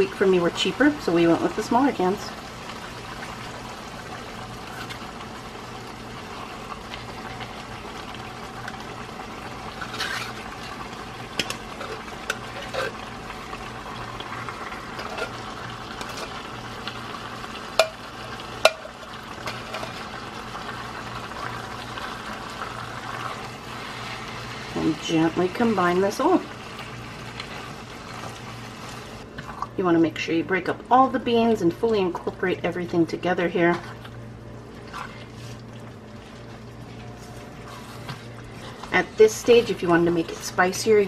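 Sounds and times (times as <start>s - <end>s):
meat sizzling in a pan: 0.0s - 29.2s
utensil scraping beans from a can: 9.8s - 10.5s
utensil clicking against can and pan: 11.3s - 12.9s, 17.8s - 18.0s, 18.6s - 20.0s.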